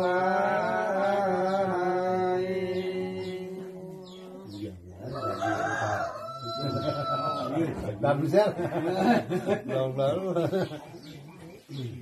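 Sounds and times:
rooster crowing: 5.0 - 7.7.

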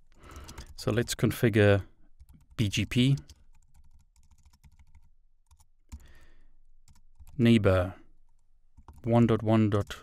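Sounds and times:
computer keyboard typing: 0.3 - 1.2, 2.2 - 6.2, 6.8 - 7.4, 8.3 - 10.0.

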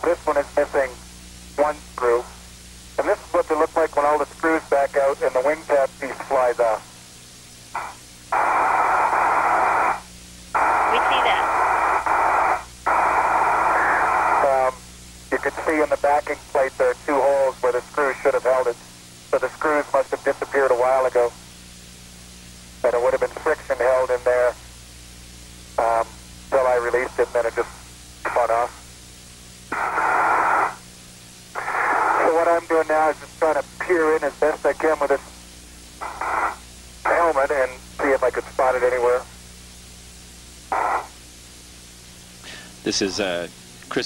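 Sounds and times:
voices over tinny radio: 0.0 - 1.0, 1.6 - 2.3, 3.0 - 6.8, 10.6 - 12.0, 13.7 - 21.4, 22.8 - 24.6, 25.8 - 28.8, 31.6 - 35.3, 36.0 - 39.3, 42.5 - 44.0
radio noise hiss: 0.0 - 44.0
steady low hum: 0.0 - 44.0.

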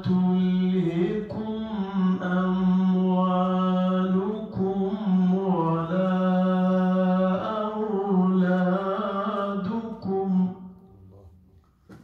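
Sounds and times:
man chanting melodically: 0.0 - 10.8.

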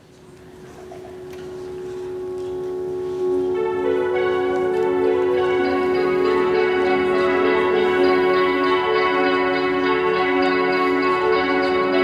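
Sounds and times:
held musical note: 0.5 - 12.0.

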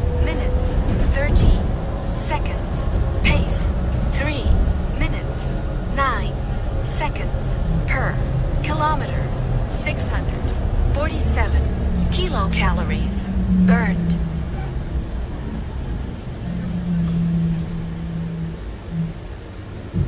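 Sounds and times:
indistinct voices talking: 0.0 - 14.9
bus engine rumble: 0.0 - 20.0
steady low hum: 0.0 - 20.0.

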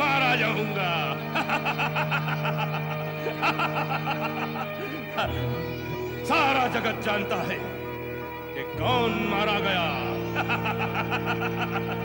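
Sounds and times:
man laughing villainously: 0.0 - 7.9, 8.9 - 12.0
background music score: 0.0 - 12.0.

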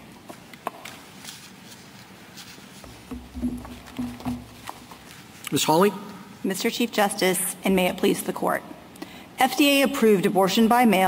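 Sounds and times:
soft knocks and thumps: 2.8 - 5.1.

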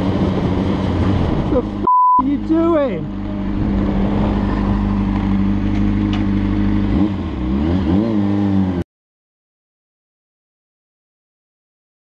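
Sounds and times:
motorcycle engine revving: 0.0 - 8.8.

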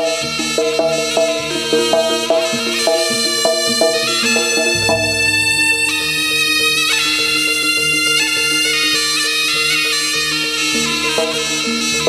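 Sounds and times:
reed shawm playing long notes: 3.0 - 7.0
ensemble pulsing accompaniment: 3.2 - 7.0.

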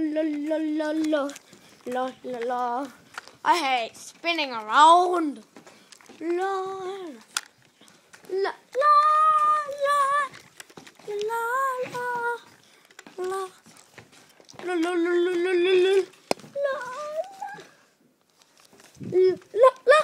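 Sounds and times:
child singing wordless notes: 0.0 - 5.5, 6.2 - 7.2, 8.3 - 10.4, 11.0 - 13.6, 14.6 - 17.8, 19.1 - 20.0.

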